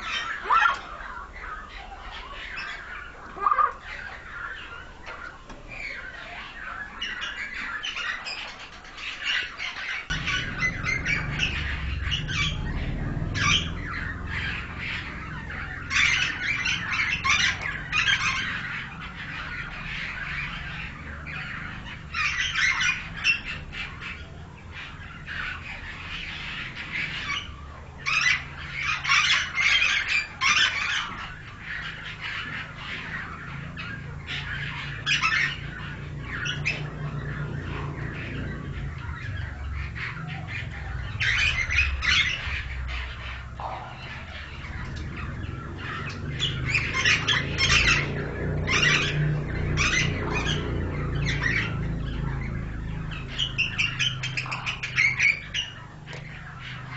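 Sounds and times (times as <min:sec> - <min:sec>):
birds squawking and chattering: 0:00.0 - 0:56.9
low steady rumble: 0:09.6 - 0:56.9.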